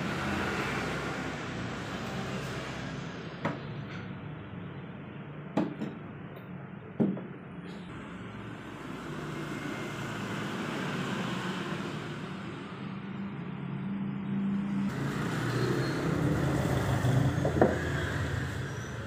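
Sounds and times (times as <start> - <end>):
traffic engine hum: 0.0 - 19.0.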